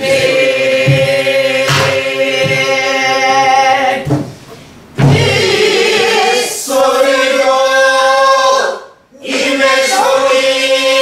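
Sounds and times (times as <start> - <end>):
barrel drum strokes: 0.0 - 3.0, 4.0 - 6.1
men singing folk song: 0.0 - 4.1.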